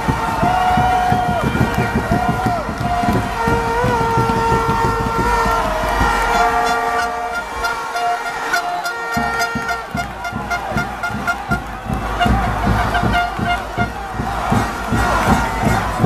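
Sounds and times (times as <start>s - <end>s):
low thumps: 0.0s - 7.7s, 9.2s - 16.0s
crowd noise: 0.0s - 16.0s
plastic stadium horns blowing: 0.0s - 16.0s.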